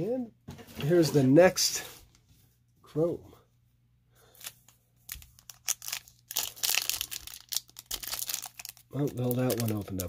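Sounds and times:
foil wrapper tearing and crinkling: 4.4s - 10.0s.

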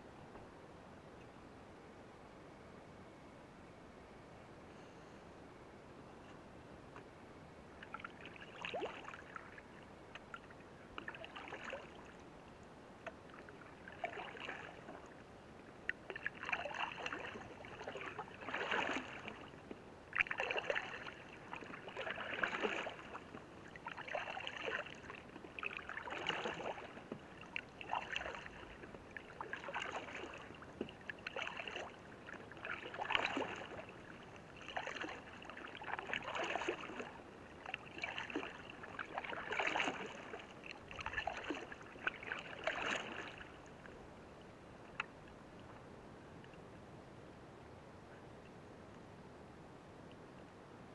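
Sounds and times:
paddle splashing in water: 7.8s - 12.2s, 13.0s - 15.2s, 15.8s - 43.9s.

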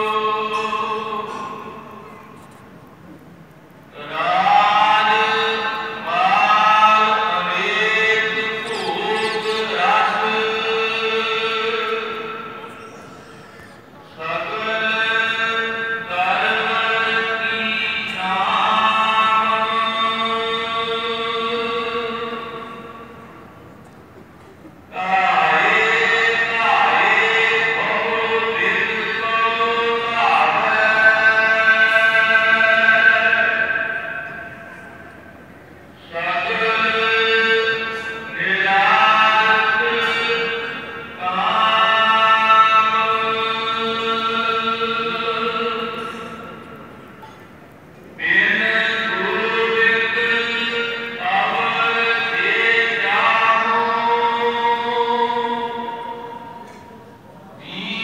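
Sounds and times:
person singing devotional song: 3.9s - 23.2s, 24.9s - 35.0s, 48.2s - 58.0s.

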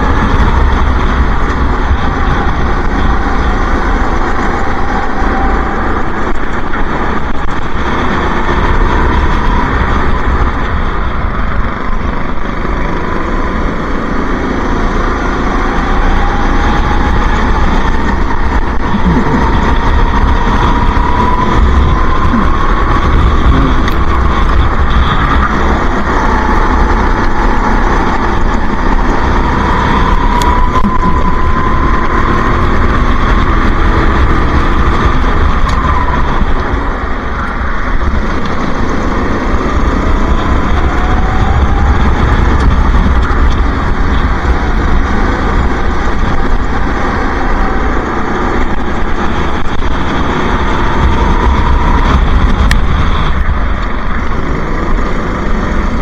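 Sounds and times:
go-kart engine racing: 0.0s - 56.0s.

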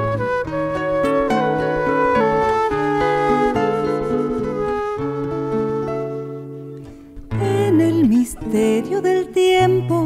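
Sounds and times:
flute melody: 0.0s - 7.4s
plucked nylon-string guitar: 0.0s - 10.0s.

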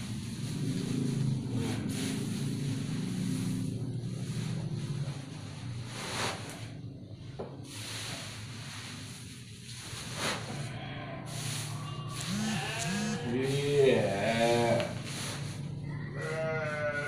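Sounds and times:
cut grass rustling: 0.0s - 6.8s, 7.6s - 17.0s
sheep bleating: 10.8s - 15.0s, 15.8s - 17.0s.

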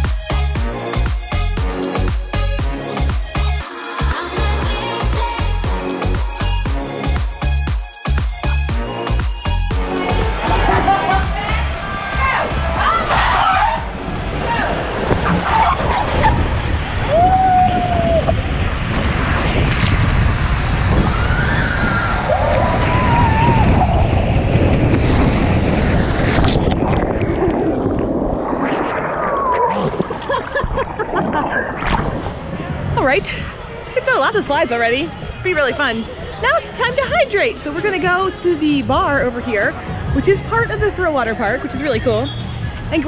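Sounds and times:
background music: 0.0s - 19.7s
people yelling: 9.8s - 18.4s, 21.1s - 24.0s
water rushing through slide tube: 9.8s - 33.8s.

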